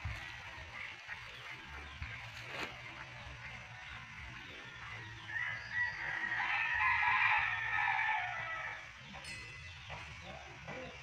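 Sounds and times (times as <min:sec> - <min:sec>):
rooster crowing: 0:05.3 - 0:08.9.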